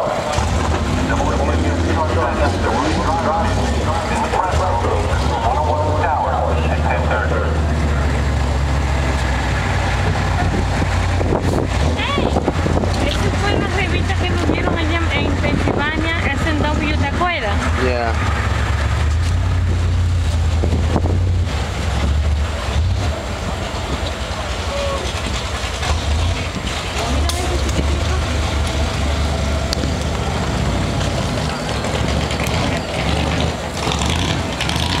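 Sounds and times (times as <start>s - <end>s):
car engine deep rumble: 0.0s - 35.0s.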